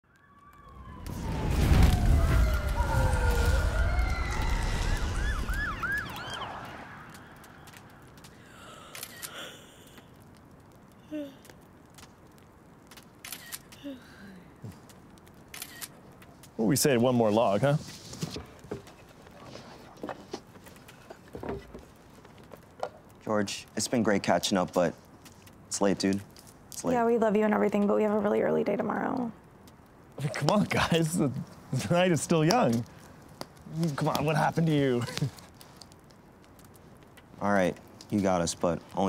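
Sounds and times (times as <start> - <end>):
distant sirens wailing: 0.0 - 8.6
campfire crackling: 0.0 - 39.0.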